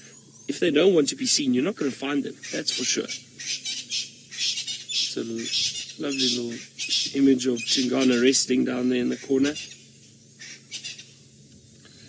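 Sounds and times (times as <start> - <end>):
birds chattering: 0.0 - 12.0.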